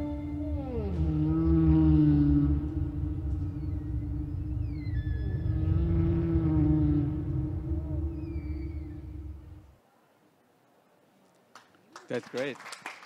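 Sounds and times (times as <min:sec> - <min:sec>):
higher whale calls sweeping down: 0:00.0 - 0:09.7
whale song moans: 0:00.0 - 0:09.8
low underwater rumble: 0:00.4 - 0:09.8.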